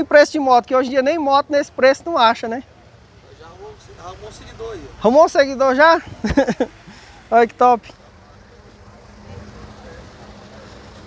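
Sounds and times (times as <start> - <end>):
faint constant hum: 0.0 - 11.0
faint distant voices: 0.0 - 11.0.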